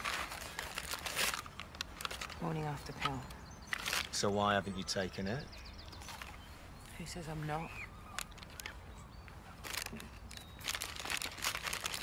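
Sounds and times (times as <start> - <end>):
paper bag crinkling: 0.0 - 2.4, 9.6 - 12.0.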